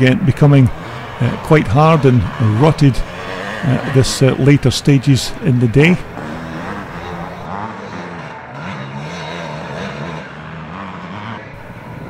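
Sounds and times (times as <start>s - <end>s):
motocross bike engine revving: 0.0s - 12.0s.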